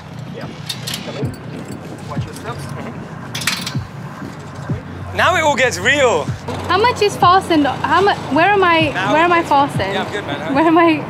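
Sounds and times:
metal clips and straps clinking: 0:00.0 - 0:04.8.

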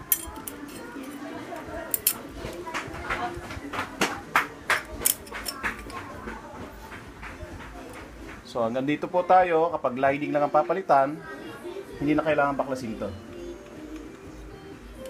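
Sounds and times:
metal plates clinking: 0:00.0 - 0:01.2.

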